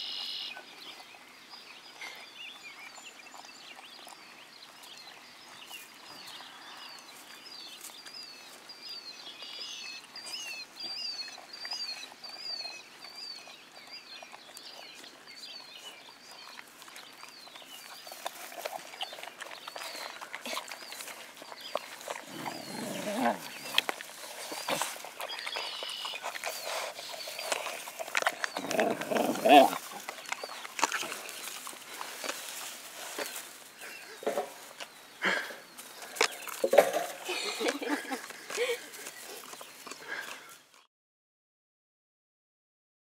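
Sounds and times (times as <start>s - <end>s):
bird chirping: 0.0s - 40.8s
pups licking and lapping: 0.6s - 40.8s
pup grunting: 18.6s - 31.6s.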